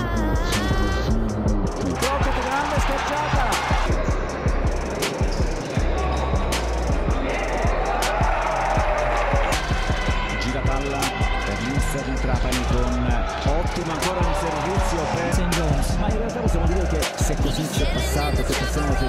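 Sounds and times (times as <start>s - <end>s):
crowd noise: 0.0s - 19.0s
music with deep bass: 0.0s - 19.0s.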